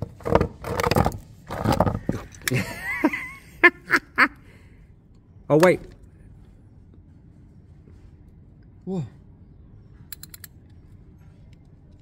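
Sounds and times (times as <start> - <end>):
socket ratchet clicking: 10.1 - 10.6.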